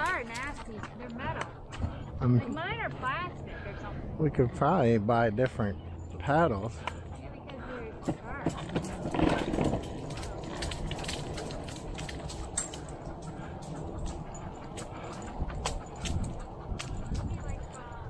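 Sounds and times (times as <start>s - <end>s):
dog claws clicking on pavement: 6.8s - 18.0s
bicycle tyres rumbling: 8.0s - 18.0s
wind on microphone: 9.0s - 18.0s.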